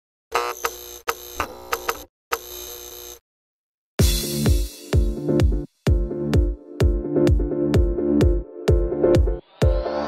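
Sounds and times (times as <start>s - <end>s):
electric buzzing: 0.3s - 3.2s.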